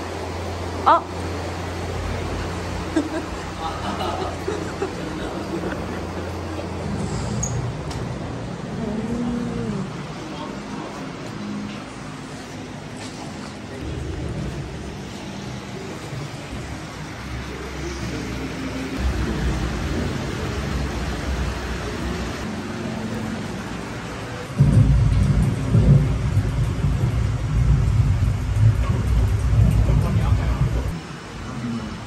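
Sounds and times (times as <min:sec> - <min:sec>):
deep thunder-like rumble: 0:13.8 - 0:17.6, 0:19.0 - 0:22.5, 0:24.3 - 0:31.0.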